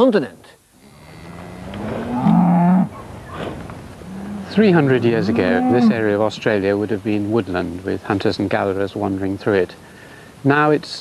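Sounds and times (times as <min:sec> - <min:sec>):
cow mooing: 0:00.8 - 0:03.0, 0:04.1 - 0:06.0.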